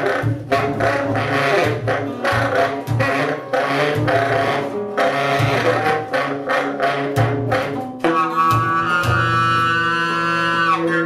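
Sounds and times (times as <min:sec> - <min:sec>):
free jazz trio playing: 0:00.0 - 0:11.0.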